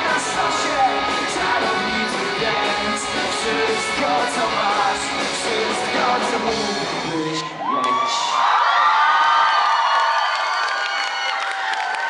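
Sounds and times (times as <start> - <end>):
electric guitar rock band: 0.0 - 7.1
crowd cheering and shouting: 0.0 - 12.0.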